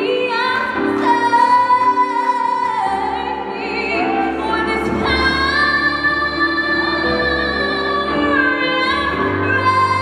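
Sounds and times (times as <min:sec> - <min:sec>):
musical accompaniment: 0:00.0 - 0:10.0
woman singing gospel song: 0:00.0 - 0:10.0.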